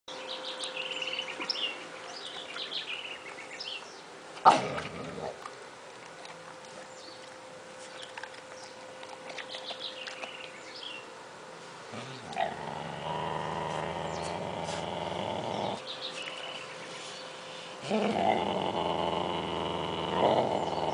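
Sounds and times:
small birds chirping: 0.1s - 4.1s, 6.7s - 11.1s, 12.0s - 17.7s, 18.3s - 20.9s
faint steady hum: 0.1s - 20.9s.

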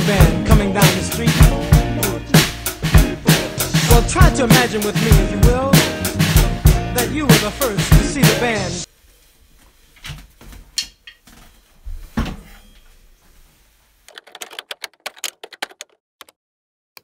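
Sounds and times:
computer keyboard keystrokes: 14.1s - 16.4s.

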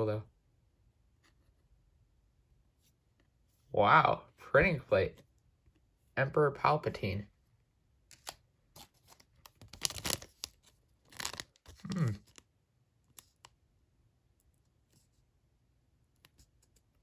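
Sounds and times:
foil wrapper crinkling: 8.1s - 12.4s.

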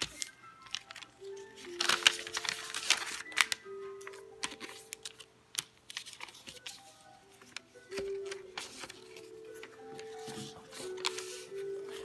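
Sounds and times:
paper crinkling and clicking: 0.0s - 12.0s.

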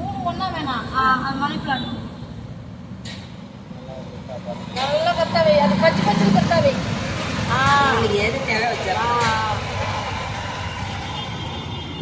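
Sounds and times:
voices talking: 3.6s - 11.3s.

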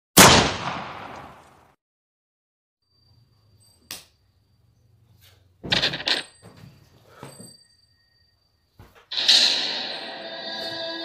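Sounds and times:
loud sharp bangs: 0.2s - 1.5s.

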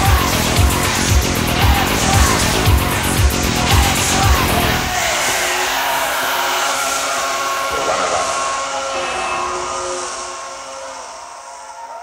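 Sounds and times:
band playing droning tones: 4.8s - 12.0s.

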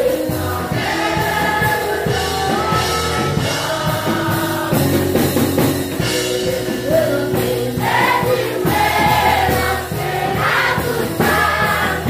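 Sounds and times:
children's choir singing: 0.0s - 12.0s
steady drum beat: 0.0s - 12.0s.

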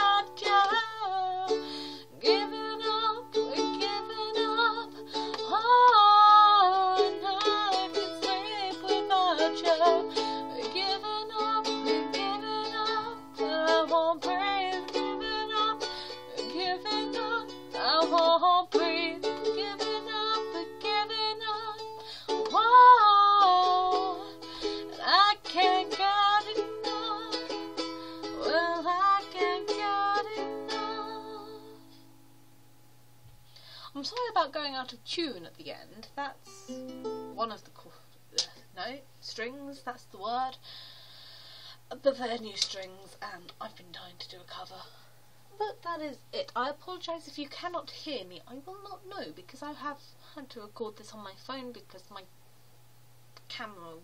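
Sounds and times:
woman singing: 0.0s - 32.0s
ukulele strumming chords: 0.0s - 32.4s, 36.5s - 37.5s.

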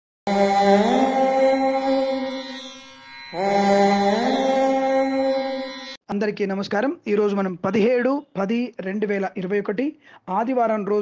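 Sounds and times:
chanted mantra music: 0.3s - 6.0s.

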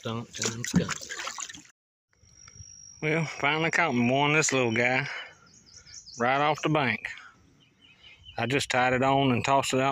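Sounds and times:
water trickling and lapping: 0.0s - 1.7s
faint outdoor background: 0.0s - 9.9s.

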